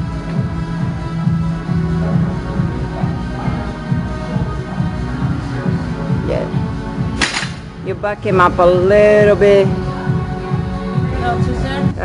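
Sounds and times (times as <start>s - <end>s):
barbell crashing on gym floor: 7.2s - 7.8s.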